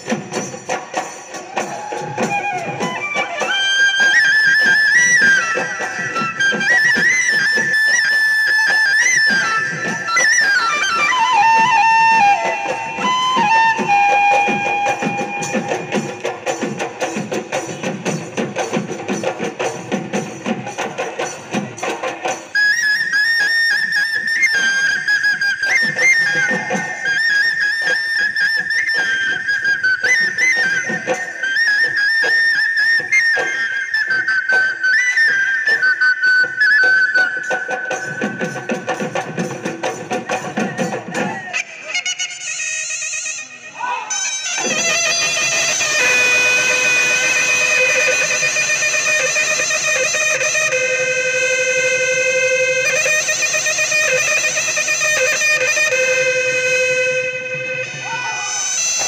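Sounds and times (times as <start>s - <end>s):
drums beaten in brisk rhythm: 0.0s - 59.0s
high wind instrument melody: 0.0s - 59.0s.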